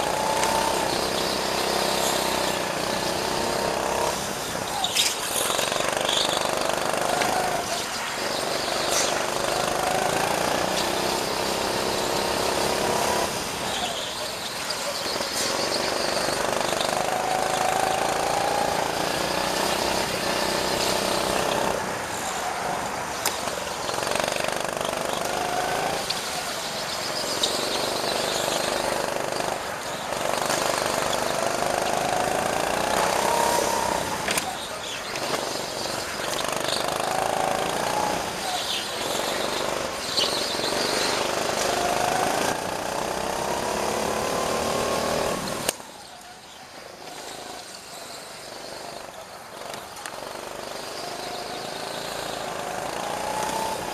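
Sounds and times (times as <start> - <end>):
go-kart engine revving: 0.0 - 53.9.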